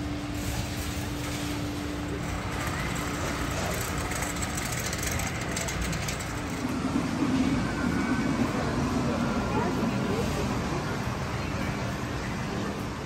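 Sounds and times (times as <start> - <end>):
low hum: 0.0 - 13.0
steady rumble: 0.0 - 13.0.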